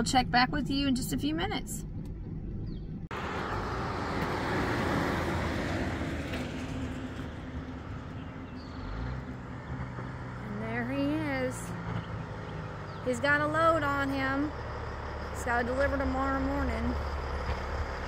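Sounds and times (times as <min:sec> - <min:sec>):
truck diesel engine: 0:00.0 - 0:18.0.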